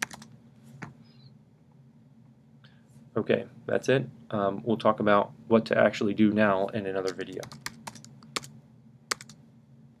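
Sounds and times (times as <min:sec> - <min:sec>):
computer clicks: 0:09.1 - 0:09.4.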